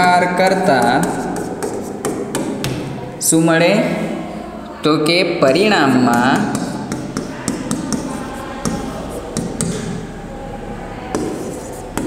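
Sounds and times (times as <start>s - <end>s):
chalk tapping and scratching on blackboard: 0.6s - 2.9s, 6.2s - 10.0s, 11.1s - 12.0s.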